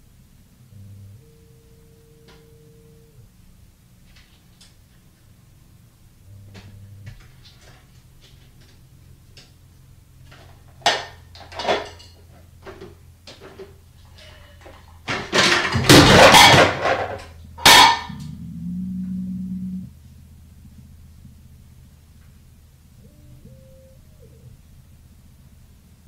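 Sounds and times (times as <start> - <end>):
low steady hum: 0.0 - 26.0
plastic containers clattering down: 10.3 - 18.1.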